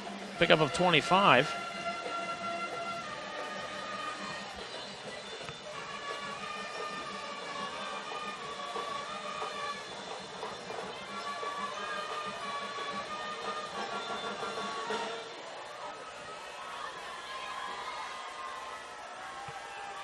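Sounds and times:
murmur of voices: 0.0 - 20.0.

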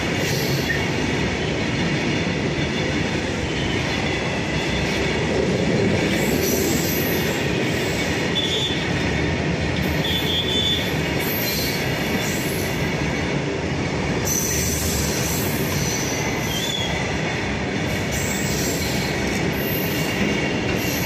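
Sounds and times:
freight train rumbling and rattling: 0.0 - 21.0
high-pitched wheel squeal: 14.3 - 17.0.

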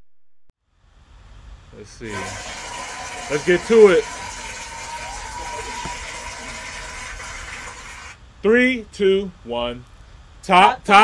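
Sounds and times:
faint high hum: 0.6 - 11.0
steady rushing hiss: 1.1 - 8.6.

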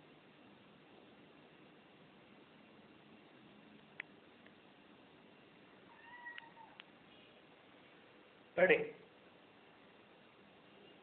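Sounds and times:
faint clicks: 3.8 - 4.6, 6.3 - 7.0
cat meowing: 5.9 - 6.8.

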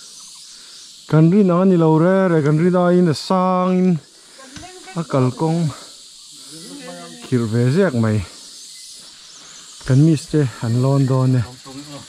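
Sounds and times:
high-pitched insect drone: 0.0 - 12.0
person speaking: 6.4 - 8.3.

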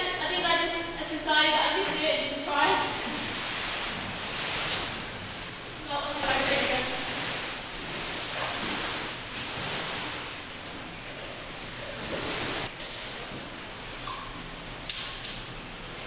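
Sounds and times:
running water rushing: 1.3 - 14.2.

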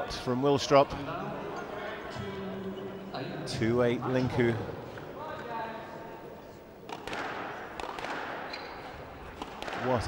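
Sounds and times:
squash ball knocks: 6.9 - 8.5, 9.4 - 10.0.

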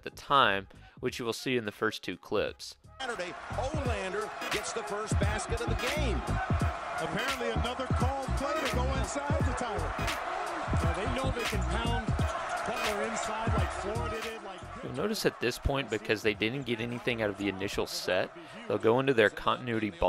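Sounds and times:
arena crowd noise: 3.0 - 20.0
voices: 3.0 - 20.0.

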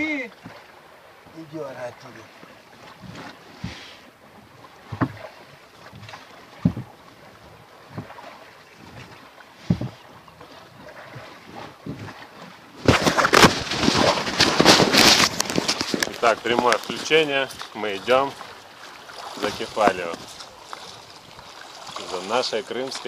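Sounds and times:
oars knocking in oarlocks: 4.7 - 23.0
rough crackling on microphone: 12.8 - 18.4.

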